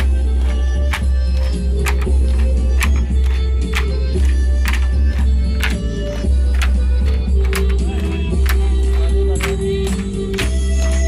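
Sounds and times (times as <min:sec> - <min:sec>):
bamboo poles clacking: 0:00.0 - 0:11.0
folk music: 0:00.0 - 0:11.0.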